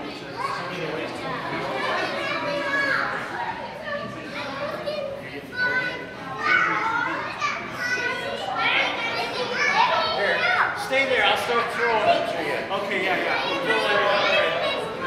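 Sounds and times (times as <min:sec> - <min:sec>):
children chattering and calling: 0:00.0 - 0:15.0.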